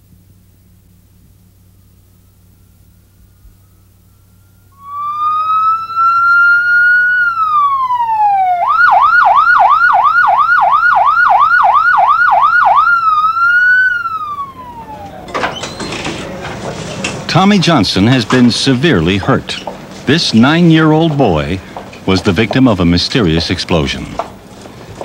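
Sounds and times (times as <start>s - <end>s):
electronic siren wailing and yelping: 4.7s - 15.4s.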